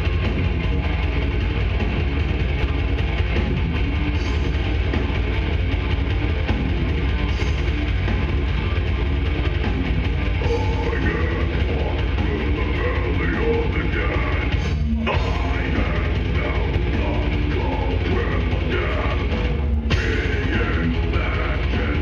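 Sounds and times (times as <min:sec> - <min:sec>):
distorted electric guitars: 0:00.0 - 0:22.0
drum kit: 0:00.0 - 0:22.0.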